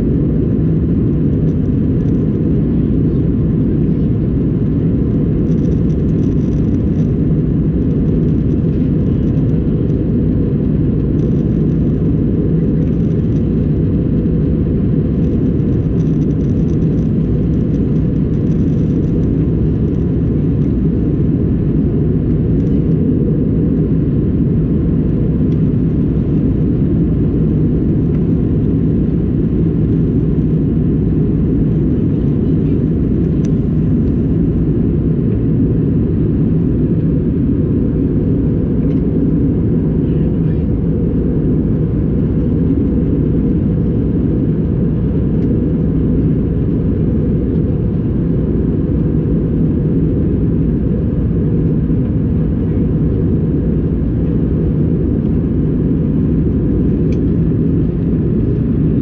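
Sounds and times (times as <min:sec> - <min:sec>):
airplane cabin engine rumble: 0:00.0 - 0:59.0
faint steady hum: 0:00.0 - 0:59.0.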